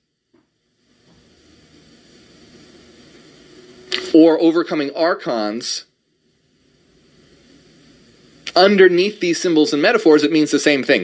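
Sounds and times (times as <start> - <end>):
low hum: 0.0 - 11.0
microphone hiss: 0.0 - 11.0
person speaking: 3.9 - 5.9, 8.5 - 11.0.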